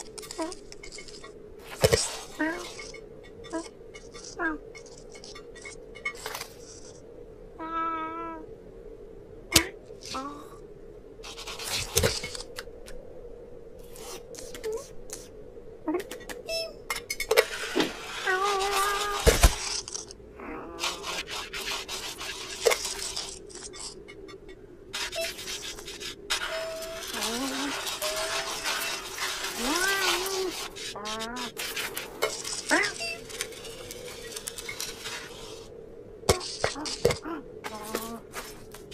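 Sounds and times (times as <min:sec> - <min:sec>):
cartoon cat meow: 0:07.6 - 0:08.5, 0:29.6 - 0:31.6
scraping scuffle: 0:25.0 - 0:35.6.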